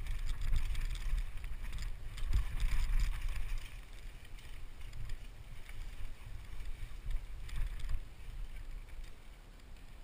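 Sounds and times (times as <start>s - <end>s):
bike rattles and clicks: 0.0s - 10.0s
bike tyres rumbling on dirt: 0.0s - 10.0s
wind buffeting microphone: 0.0s - 10.0s.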